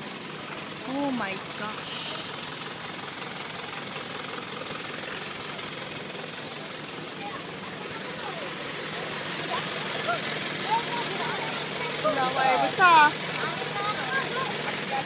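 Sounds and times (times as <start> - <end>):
truck engine idling: 0.0 - 15.0
faint voices of people: 6.2 - 15.0.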